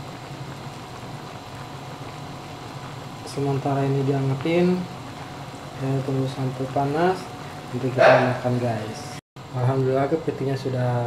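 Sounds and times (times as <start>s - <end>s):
sauce bubbling in a wok: 0.0s - 8.0s.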